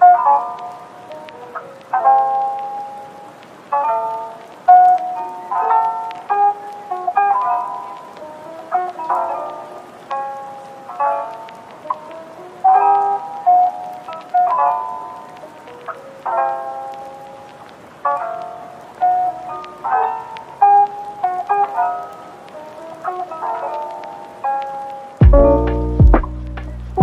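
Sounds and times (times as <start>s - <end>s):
soft instrumental music: 0.0s - 27.0s.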